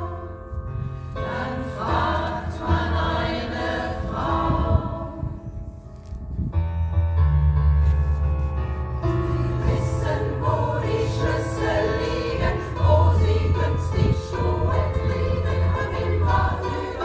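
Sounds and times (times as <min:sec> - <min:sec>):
women's choir singing pop song: 0:00.0 - 0:00.5, 0:01.2 - 0:05.4, 0:09.2 - 0:17.0.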